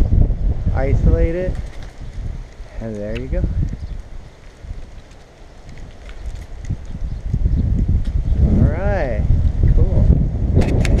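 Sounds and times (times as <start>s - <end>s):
wind and handling rumble: 0.0s - 11.0s.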